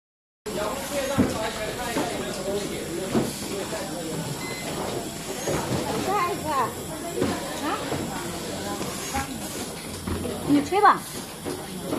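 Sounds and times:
busy workshop din: 0.5s - 11.9s.

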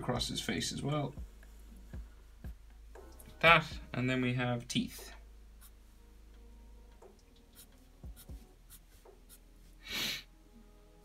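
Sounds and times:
marker drawing on paper: 7.6s - 9.5s.

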